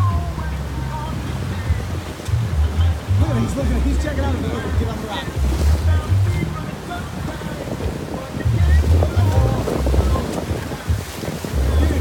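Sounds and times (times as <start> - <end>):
sea breaking around rocks: 0.0 - 12.0
wind buffeting microphone: 0.0 - 12.0.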